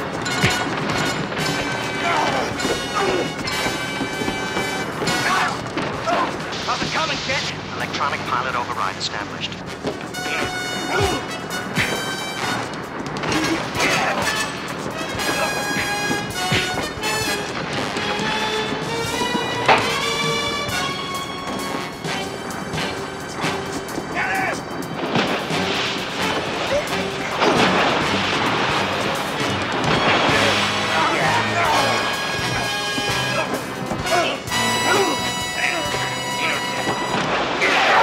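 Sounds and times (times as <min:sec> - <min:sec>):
punches and thumps: 0:00.0 - 0:06.5, 0:09.8 - 0:20.8
dramatic action music: 0:00.0 - 0:38.0.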